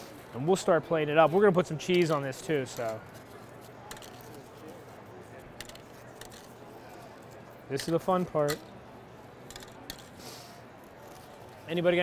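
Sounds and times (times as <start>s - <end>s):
faint distant voices: 0.0s - 12.0s
large hall murmur: 0.0s - 12.0s.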